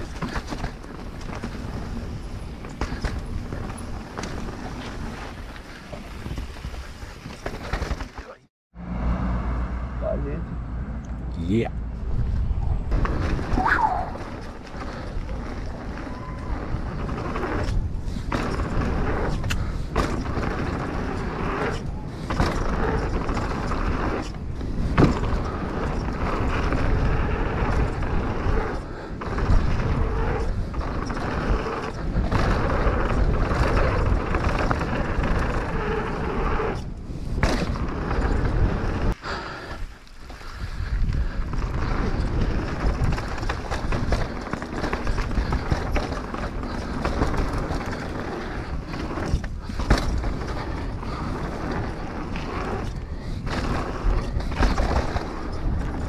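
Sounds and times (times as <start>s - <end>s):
bike rattling and knocking: 0.0s - 8.4s, 12.9s - 39.2s, 40.2s - 56.0s
tyres crunching over loose ground: 0.0s - 8.4s, 12.9s - 56.0s
wind rushing over microphone: 8.8s - 56.0s.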